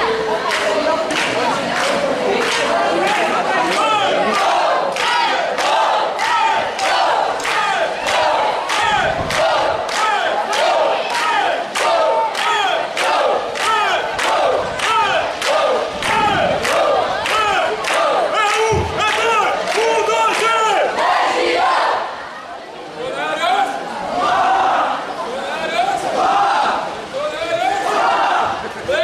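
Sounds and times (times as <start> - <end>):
young voices chanting in unison: 0.0 - 22.5, 27.7 - 29.0.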